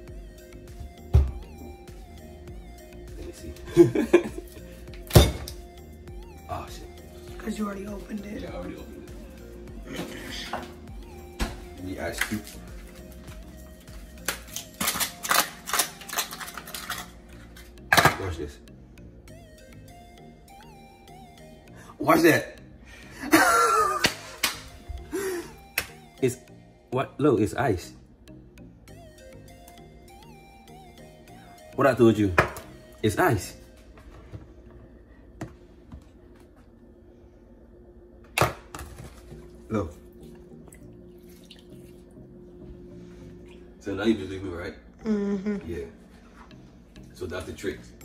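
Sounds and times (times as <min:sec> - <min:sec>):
ice cubes cracking in plastic tray: 0:14.3 - 0:17.1.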